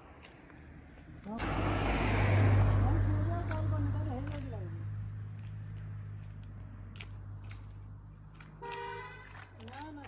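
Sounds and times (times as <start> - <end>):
road and wind noise: 0.0 - 10.0
vehicle engine hum: 0.0 - 10.0.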